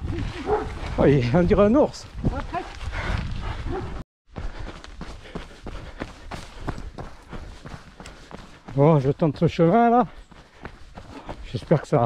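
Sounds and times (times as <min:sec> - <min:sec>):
footsteps: 0:00.0 - 0:12.0
dog barking: 0:00.4 - 0:00.8, 0:03.6 - 0:04.0.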